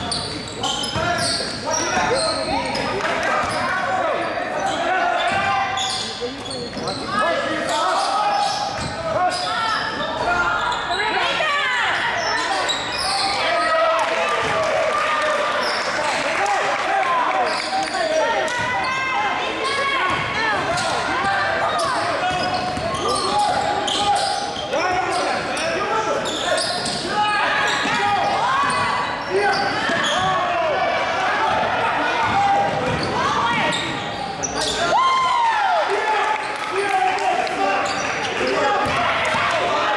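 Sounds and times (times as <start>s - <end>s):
voices echoing in gym: 0.0s - 39.9s.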